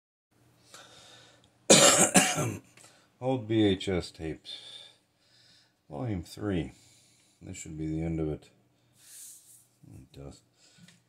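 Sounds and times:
man coughing: 0:01.7 - 0:02.6.

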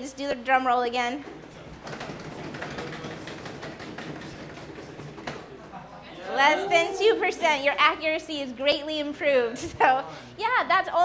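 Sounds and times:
hands drumming on tables: 0:01.8 - 0:05.6.

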